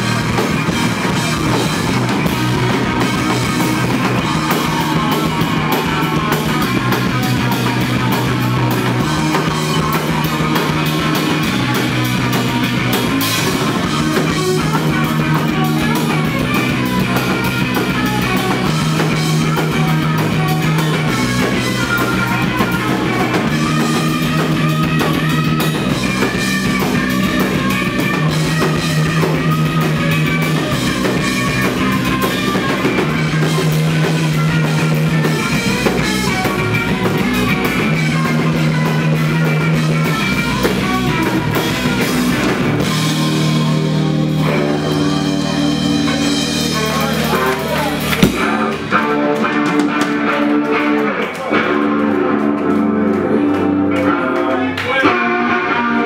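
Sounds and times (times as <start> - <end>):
rock band playing loudly: 0.0 - 56.0.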